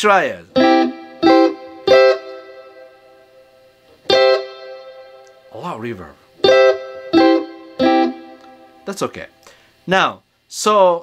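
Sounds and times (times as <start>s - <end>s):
electric guitar chords with reverb: 0.5s - 5.6s, 6.4s - 8.9s.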